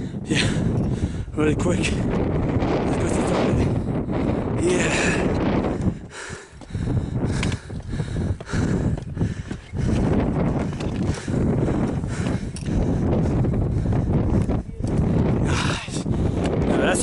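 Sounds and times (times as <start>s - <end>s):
wind buffeting microphone: 0.0s - 17.0s
footsteps on stone steps: 4.8s - 16.9s.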